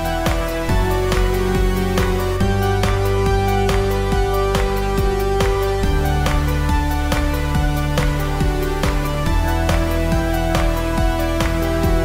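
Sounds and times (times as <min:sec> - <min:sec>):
upbeat electronic music: 0:00.0 - 0:12.0.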